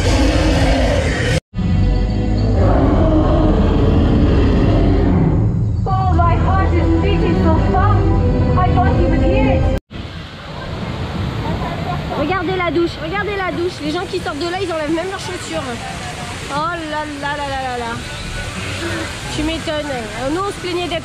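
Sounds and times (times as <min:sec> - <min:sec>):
people's voices: 0:05.8 - 0:21.0
rushing white water: 0:09.9 - 0:21.0.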